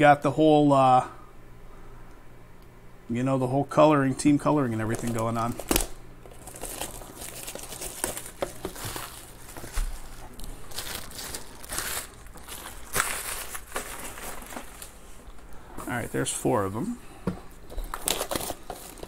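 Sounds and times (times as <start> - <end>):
wrapping crinkling: 4.7 - 16.1, 17.5 - 19.0.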